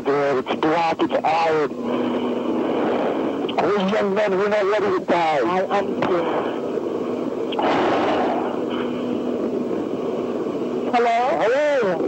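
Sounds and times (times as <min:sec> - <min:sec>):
telephone line hum: 0:00.0 - 0:07.7, 0:08.3 - 0:12.0
burst of rushing noise: 0:07.6 - 0:08.7.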